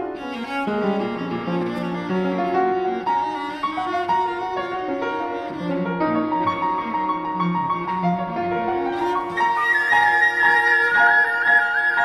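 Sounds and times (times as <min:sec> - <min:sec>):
cello bowing a melody: 0:00.0 - 0:12.0
piano accompaniment: 0:00.0 - 0:12.0.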